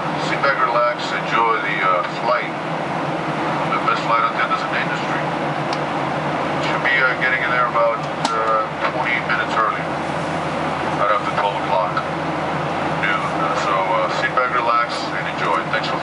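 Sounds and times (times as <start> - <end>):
jet airliner cabin noise: 0.0 - 16.0.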